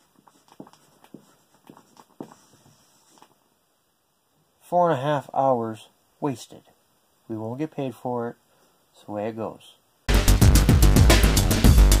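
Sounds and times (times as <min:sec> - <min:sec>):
marker writing on whiteboard: 0:00.0 - 0:03.3.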